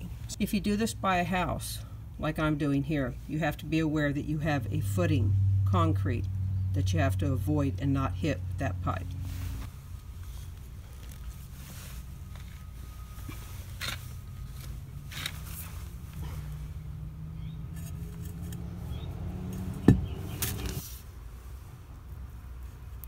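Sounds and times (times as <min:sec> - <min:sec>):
steady low hum: 0:00.0 - 0:23.0
metal pipe scraping in soil: 0:17.7 - 0:21.0.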